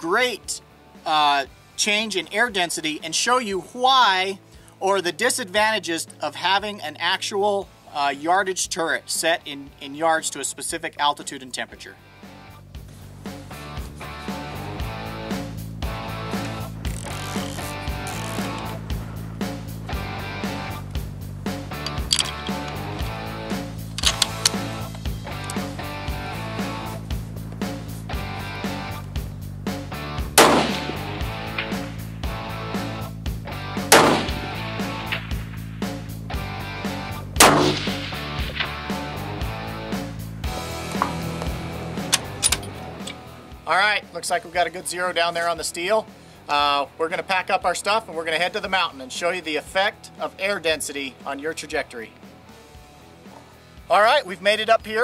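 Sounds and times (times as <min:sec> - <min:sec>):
background music with steady beat: 0:00.0 - 0:55.0
loud rifle shots with ringing: 0:30.4 - 0:31.2, 0:33.9 - 0:35.3, 0:37.4 - 0:38.8.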